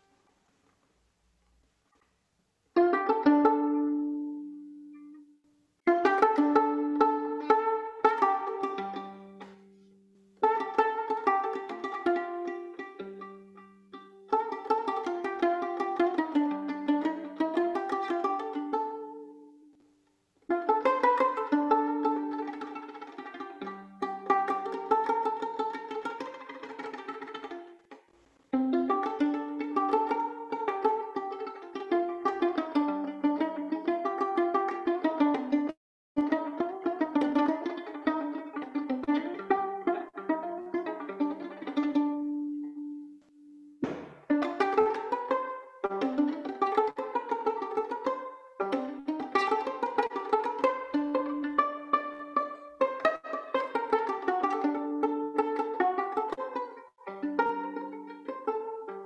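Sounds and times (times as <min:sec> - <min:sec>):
plucked violin pizzicato: 0:00.0 - 0:00.2, 0:02.7 - 0:59.0.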